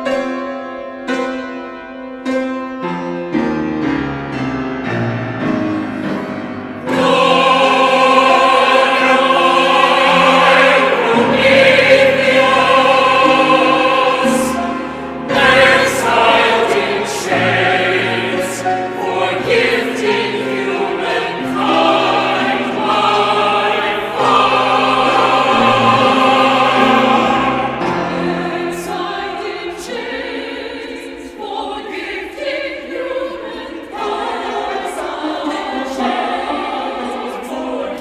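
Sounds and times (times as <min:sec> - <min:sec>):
choir singing sustained chords: 0:05.4 - 0:38.0.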